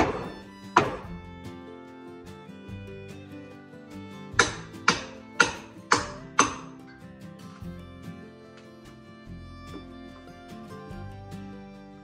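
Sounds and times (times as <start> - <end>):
boot kicking wooden brace: 0.0 - 1.4, 4.4 - 6.7
background music: 0.0 - 12.0.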